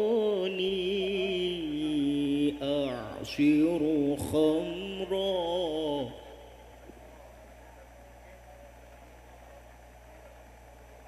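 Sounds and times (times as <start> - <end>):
young man reciting melodically: 0.0 - 6.8.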